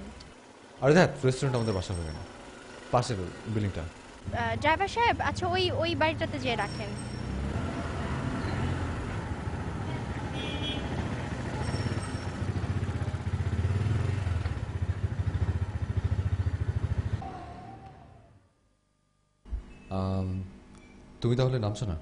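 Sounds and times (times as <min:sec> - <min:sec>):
auto-rickshaw engine running: 0:00.0 - 0:18.4.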